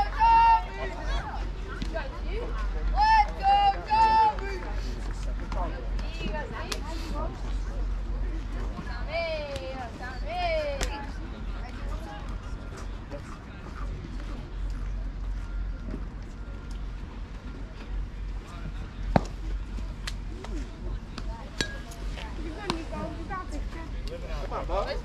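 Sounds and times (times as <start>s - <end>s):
spectator chatter and calls: 0.0s - 25.0s.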